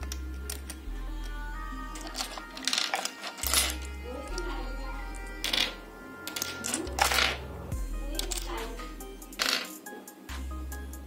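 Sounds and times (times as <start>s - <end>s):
background music: 0.0s - 11.0s
porcelain dishes clinking: 5.4s - 7.4s.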